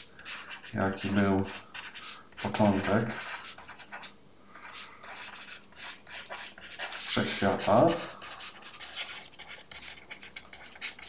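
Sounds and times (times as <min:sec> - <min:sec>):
stylus scratching on drawing tablet: 0:00.0 - 0:11.0.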